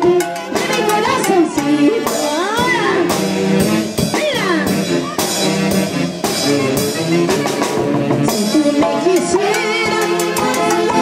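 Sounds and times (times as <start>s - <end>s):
live band playing dance music: 0.0s - 11.0s.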